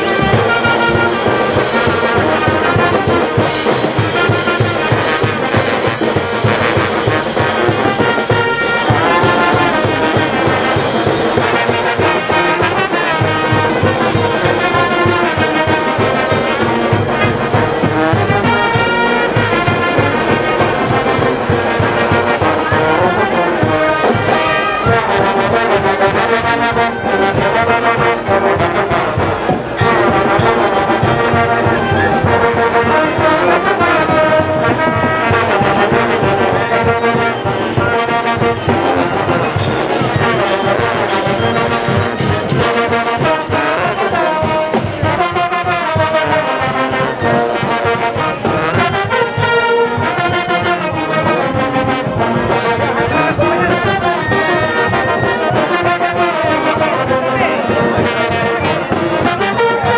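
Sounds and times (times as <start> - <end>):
brass band playing: 0.0 - 59.9.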